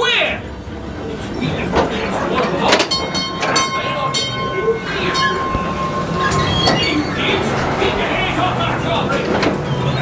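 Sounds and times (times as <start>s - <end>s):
sharp metallic clanks: 1.6s - 8.1s
train wheels squealing: 3.4s - 10.0s.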